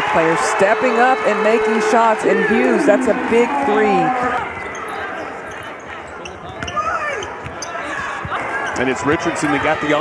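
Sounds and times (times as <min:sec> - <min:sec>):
arena crowd noise: 0:00.0 - 0:10.0
sneakers squeaking: 0:03.8 - 0:09.0.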